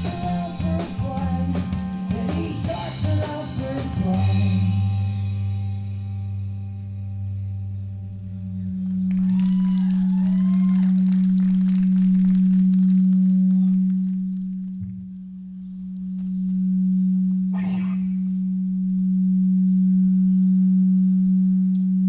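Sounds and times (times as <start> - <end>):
low electric drone from amplification: 0.0 - 22.0.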